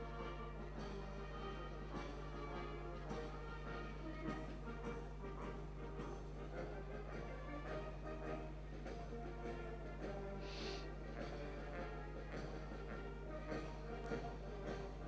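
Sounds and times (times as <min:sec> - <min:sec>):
brass marching band playing: 0:00.0 - 0:15.0
low electrical hum: 0:00.0 - 0:15.0.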